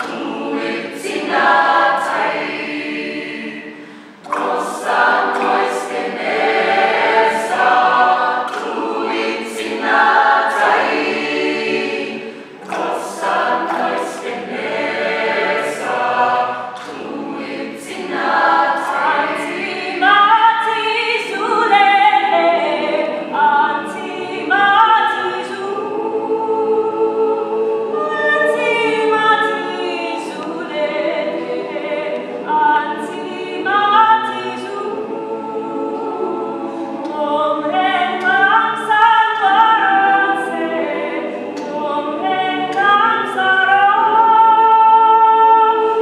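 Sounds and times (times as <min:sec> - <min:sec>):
mixed choir singing a cappella: 0:00.0 - 0:46.0.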